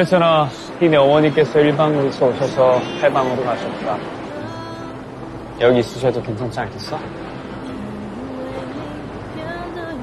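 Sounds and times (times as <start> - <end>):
sea surf rushing: 0.0 - 10.0
soft slow melody: 0.0 - 10.0.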